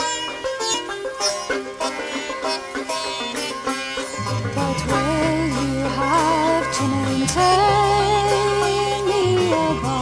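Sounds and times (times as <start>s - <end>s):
double bass: 0.0s - 10.0s
plucked strings: 0.0s - 10.0s
sitar playing: 0.0s - 10.0s.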